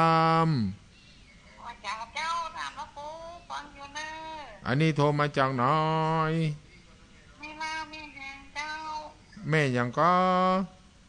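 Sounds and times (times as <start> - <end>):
man speaking: 0.0 - 0.8, 4.6 - 7.9, 9.3 - 10.8.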